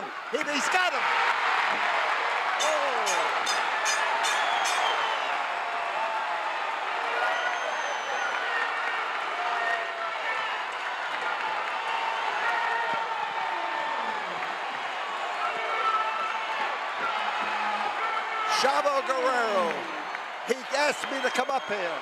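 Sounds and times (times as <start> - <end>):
crowd cheering and shouting: 0.0 - 22.0.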